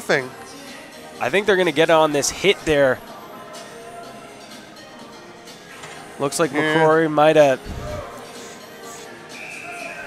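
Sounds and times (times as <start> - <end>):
faint music with steady tones: 0.0 - 10.0.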